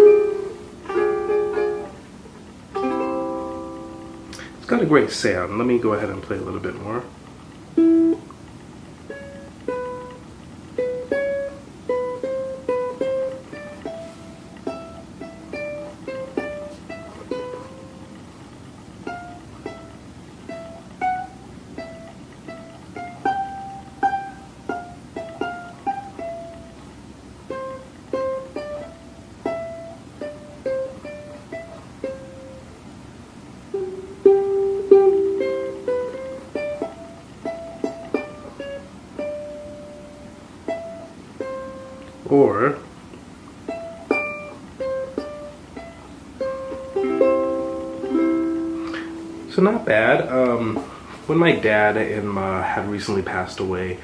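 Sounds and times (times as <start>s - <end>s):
ukulele plucked melody: 0.0s - 52.3s.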